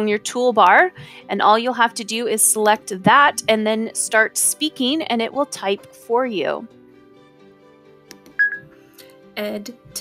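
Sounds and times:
soft background music: 0.0 - 10.0
short high beep: 8.4 - 8.7.

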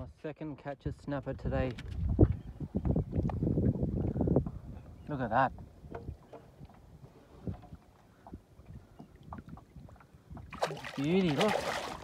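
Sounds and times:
faint wind rumble on microphone: 0.0 - 12.0
soft knocks and clicks: 5.9 - 6.8.

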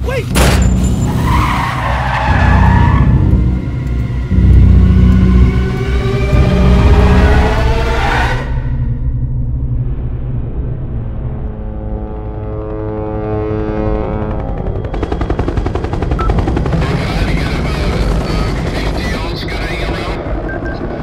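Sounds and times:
helicopter rotors chopping: 11.9 - 21.0.

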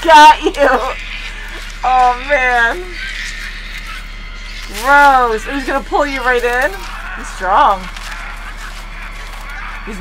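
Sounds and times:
low tense background music: 0.5 - 10.0.

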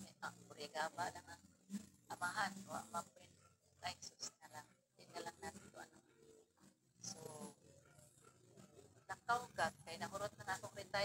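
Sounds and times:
woman speaking over video call: 0.0 - 1.5, 2.1 - 6.0, 9.1 - 11.0.

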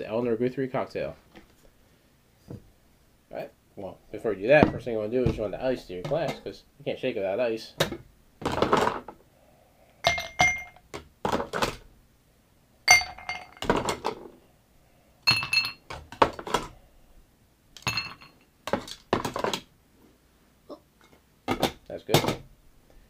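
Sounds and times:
ice cubes clinking into glasses: 17.8 - 19.4.

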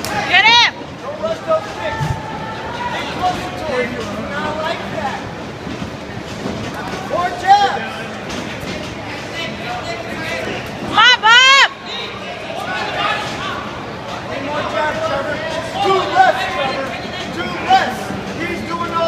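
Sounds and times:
crowd hubbub: 0.0 - 19.0.

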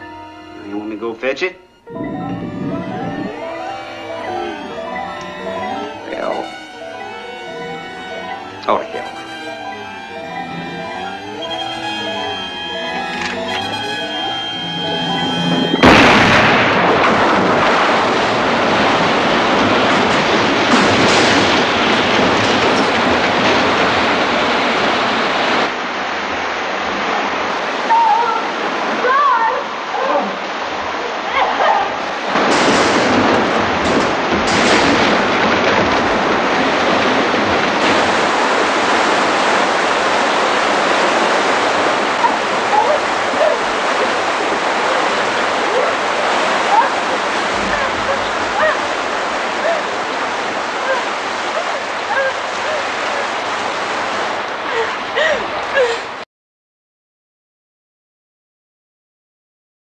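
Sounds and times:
rushing churning water: 0.0 - 56.2.

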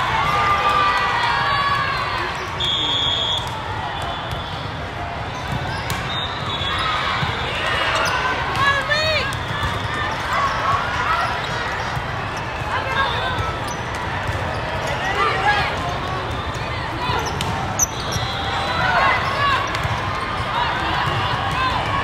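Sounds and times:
crowd chatter in echoing hall: 0.0 - 22.0
shoes squeaking on court: 5.3 - 8.4, 9.3 - 15.1, 16.1 - 20.0.

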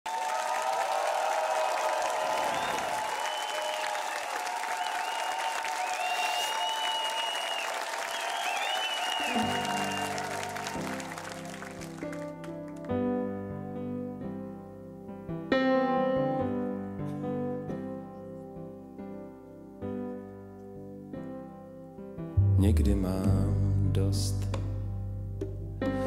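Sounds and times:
audience applauding and cheering: 0.0 - 13.1
high whistles: 2.4 - 11.1
keyboard sustained chords: 9.2 - 26.0.

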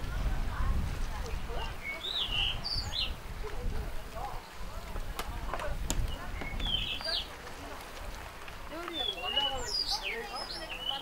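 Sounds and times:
faint chatter of people: 0.0 - 11.0
small birds chirping: 1.2 - 3.3, 5.7 - 8.0, 8.7 - 11.0.

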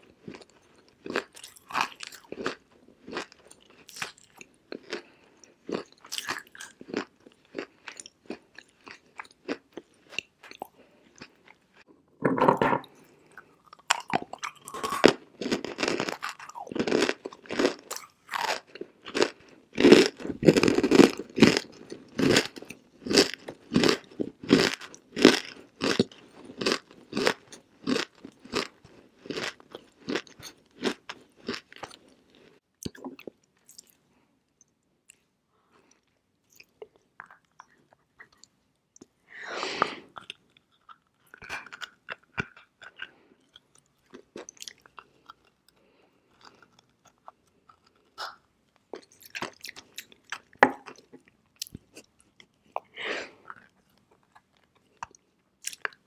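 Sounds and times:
crunchy chewing: 0.0 - 11.6, 12.9 - 34.0, 40.1 - 56.0.

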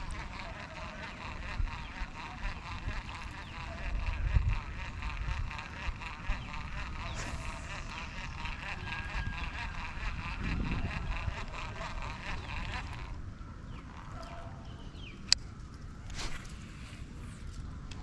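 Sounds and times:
birds calling: 0.0 - 15.4
low rumble: 6.6 - 11.0.

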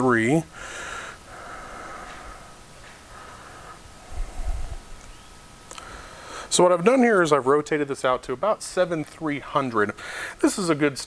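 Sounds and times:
man breathing quietly: 0.5 - 5.0, 5.7 - 6.5, 10.0 - 10.4.

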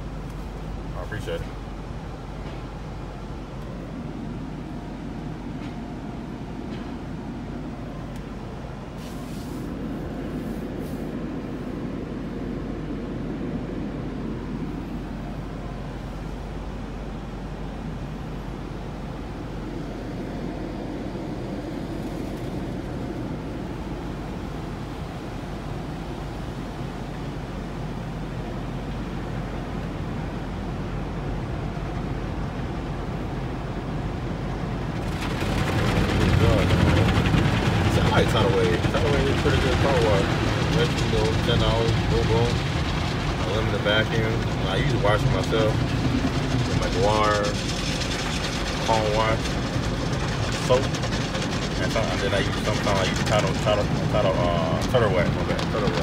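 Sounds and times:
car wash machinery rumble: 0.0 - 56.0
water spray and brushes on car: 9.0 - 11.2, 34.9 - 56.0
car engine idling: 11.2 - 56.0.

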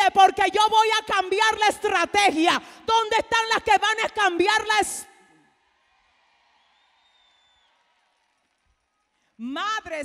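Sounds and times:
faint arena audience: 5.1 - 9.4.

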